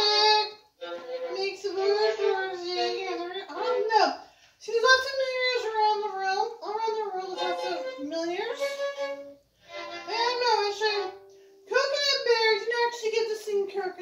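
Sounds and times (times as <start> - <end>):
violin playing: 0.0 - 4.1, 6.8 - 13.0.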